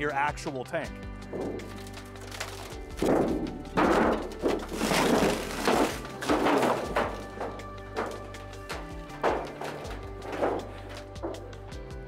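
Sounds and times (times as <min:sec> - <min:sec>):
background music: 0:00.0 - 0:12.0
sheet metal rattling: 0:01.3 - 0:11.6.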